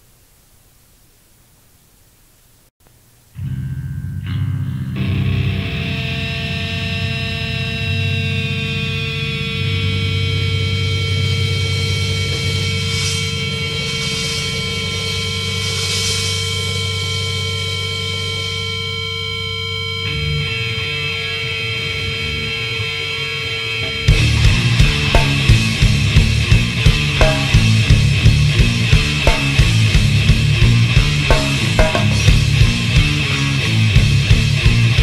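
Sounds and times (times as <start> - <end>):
guitars holding sustained notes: 3.4 - 35.0
swells of high noise: 10.6 - 20.0, 23.4 - 34.0
dense low rumble: 24.1 - 35.0.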